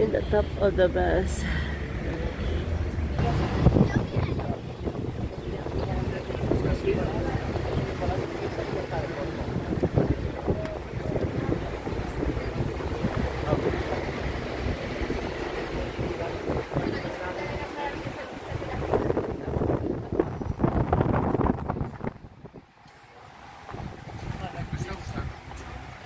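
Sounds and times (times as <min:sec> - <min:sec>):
traffic noise: 0:00.0 - 0:26.0
wind buffeting microphone: 0:00.0 - 0:26.0.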